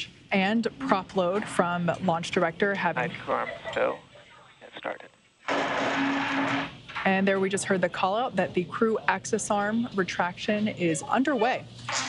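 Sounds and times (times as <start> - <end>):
steady low hum: 0.0 - 12.0
radio hiss: 2.8 - 6.6.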